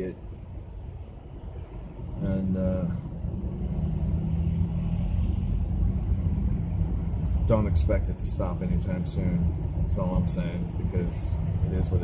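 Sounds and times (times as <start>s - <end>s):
car engine rumble: 0.0s - 12.0s
low hum: 0.0s - 12.0s.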